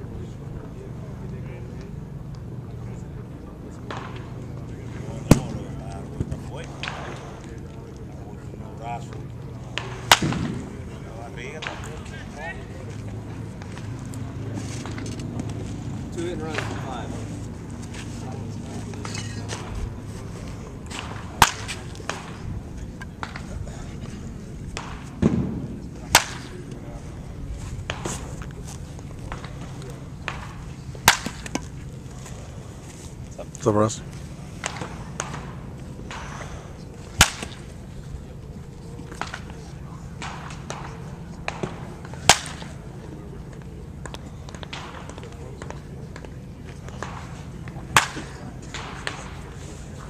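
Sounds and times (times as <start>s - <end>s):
wooden bat hitting ball: 3.8s - 4.4s, 5.3s - 7.5s, 9.2s - 10.8s, 20.9s - 23.5s, 24.7s - 26.8s, 27.8s - 28.6s, 29.2s - 32.0s, 34.6s - 36.4s, 37.2s - 37.8s, 40.2s - 42.9s, 43.5s - 49.5s.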